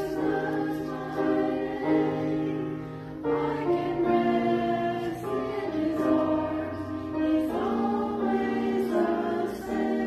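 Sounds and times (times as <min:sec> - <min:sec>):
women singing a church song: 0:00.0 - 0:10.0.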